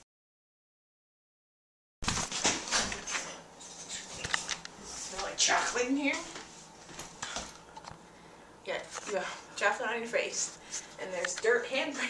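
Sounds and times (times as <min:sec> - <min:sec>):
woman speaking: 0:05.0 - 0:06.4, 0:08.6 - 0:12.0.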